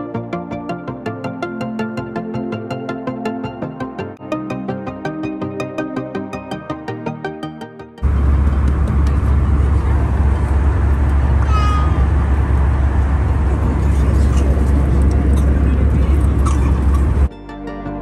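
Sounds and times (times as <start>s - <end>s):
airliner cabin drone: 8.0s - 17.3s.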